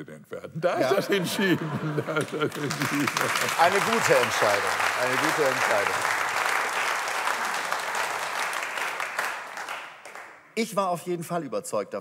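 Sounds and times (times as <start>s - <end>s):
audience applauding: 0.9s - 10.4s.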